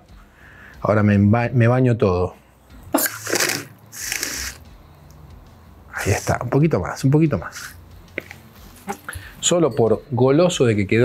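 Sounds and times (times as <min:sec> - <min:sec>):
soda water fizzing: 0:03.0 - 0:04.6
soda siphon spraying: 0:03.0 - 0:04.7.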